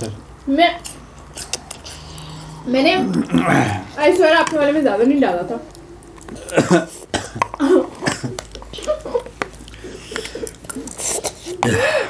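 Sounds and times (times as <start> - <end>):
person coughing: 6.4 - 8.4, 11.5 - 12.0.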